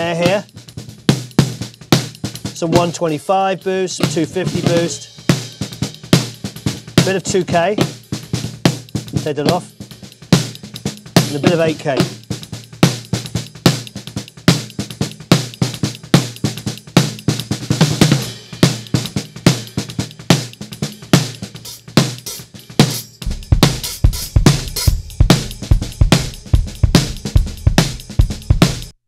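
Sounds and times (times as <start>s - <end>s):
rapid snare drum hits: 0.0s - 29.0s.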